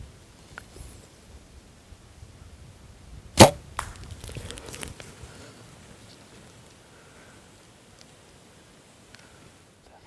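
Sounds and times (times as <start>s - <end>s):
bowstring crack and arrow strike: 3.4s - 5.1s.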